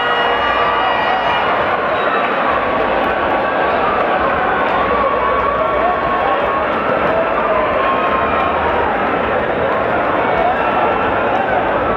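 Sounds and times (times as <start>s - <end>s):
arena crowd talking and shouting: 0.0s - 11.9s.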